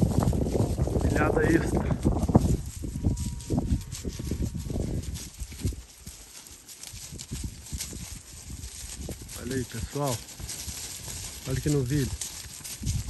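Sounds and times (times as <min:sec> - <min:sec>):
hooves stepping through dry grass: 0:00.0 - 0:13.0.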